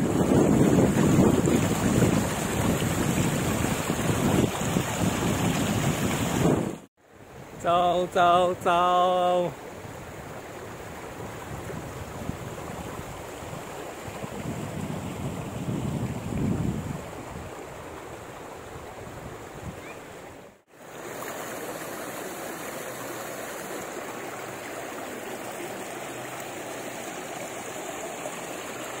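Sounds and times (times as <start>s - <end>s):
low wind buffeting: 0.0s - 6.9s, 9.8s - 17.8s.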